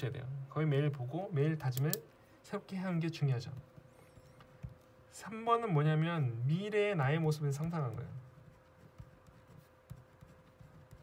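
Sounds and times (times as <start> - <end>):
pen scratching on paper: 7.6 - 11.0.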